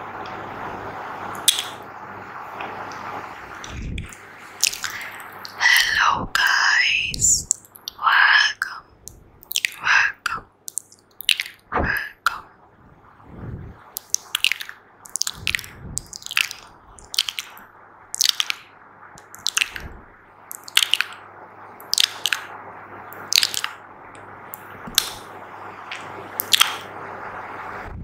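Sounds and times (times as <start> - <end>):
wet mouth clicks and pops: 1.4 - 1.8, 3.6 - 8.0, 8.6 - 12.5, 13.9 - 22.5, 23.1 - 23.8, 24.5 - 25.3, 25.9 - 26.9.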